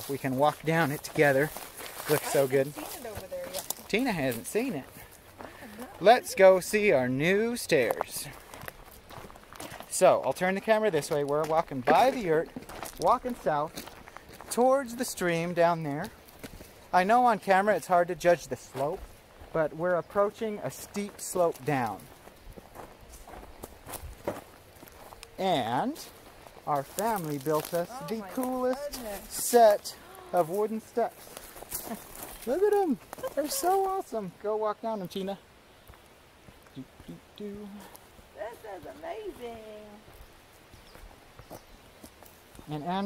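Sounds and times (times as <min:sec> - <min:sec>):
footsteps on dirt path: 0:00.0 - 0:34.4, 0:35.0 - 0:43.0.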